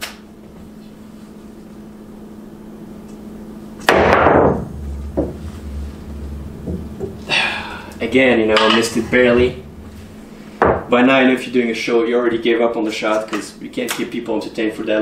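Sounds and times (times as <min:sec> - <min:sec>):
pool balls knocking together: 0:03.8 - 0:07.3, 0:08.5 - 0:10.9
balls rolling on table: 0:03.8 - 0:11.0
pool cue striking ball: 0:03.8 - 0:11.1.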